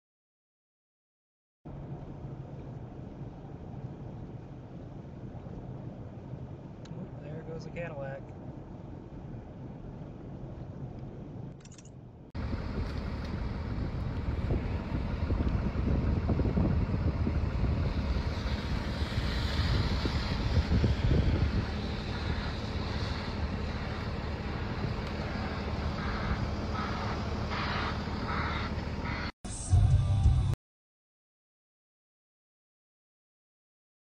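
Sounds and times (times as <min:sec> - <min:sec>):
wind noise on microphone: 0:12.4 - 0:28.6
wheel loader diesel engines rumbling: 0:12.4 - 0:29.3.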